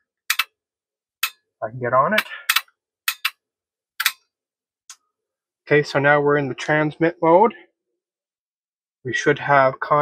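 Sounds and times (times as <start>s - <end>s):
relay clicks: 2.2s - 3.3s.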